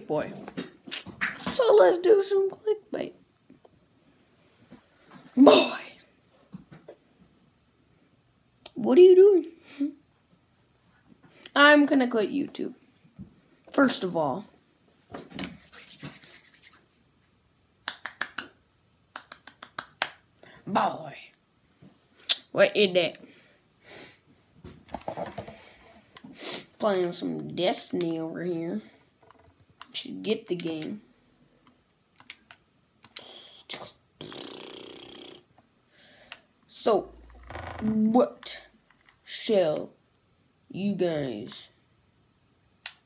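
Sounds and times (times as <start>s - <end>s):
finger snaps: 17.8s - 20.2s
person snore-like breath: 34.2s - 35.4s.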